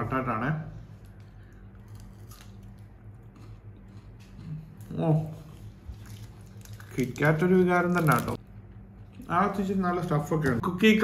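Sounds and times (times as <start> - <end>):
steady low hum: 0.0 - 11.0
chewing crunchy wafer: 1.0 - 9.4.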